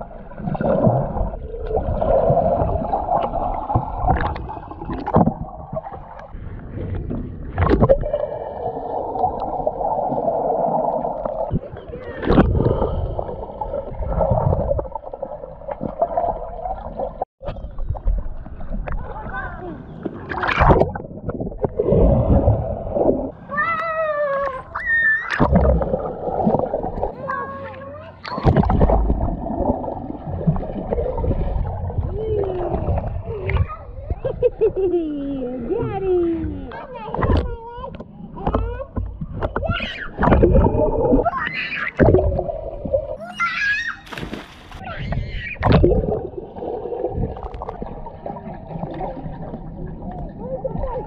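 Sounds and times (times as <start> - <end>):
muffled underwater rush of water: 0.0 - 23.6, 24.8 - 27.4, 28.2 - 34.9, 38.3 - 51.0
splashes: 0.0 - 23.6, 24.8 - 33.8, 39.3 - 51.0
sharp splash of jumper: 43.8 - 44.9
muffled high-pitched call underwater: 44.8 - 45.8.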